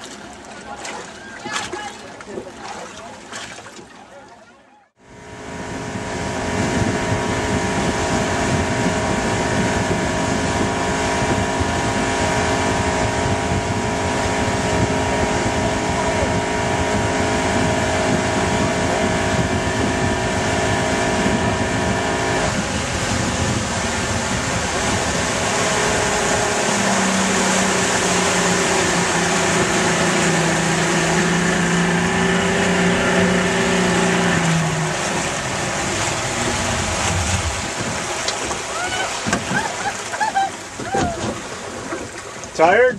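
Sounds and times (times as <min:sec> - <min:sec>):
water wash: 0:00.0 - 0:04.4, 0:05.2 - 0:42.9
motorboat engine: 0:00.0 - 0:42.9
rushing wind: 0:05.2 - 0:40.1.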